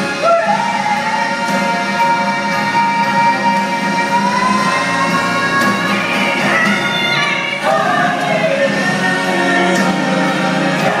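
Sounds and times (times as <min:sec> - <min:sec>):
vocal group singing in harmony: 0:00.0 - 0:11.0.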